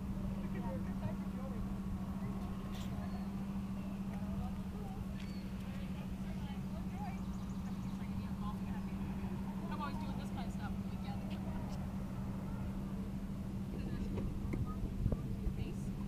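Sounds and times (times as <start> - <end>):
faint distant voices: 0.0 - 16.0
steady low hum: 0.0 - 16.0.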